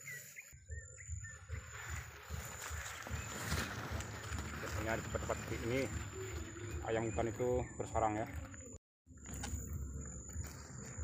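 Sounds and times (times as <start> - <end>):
footsteps through undergrowth: 0.0 - 11.0.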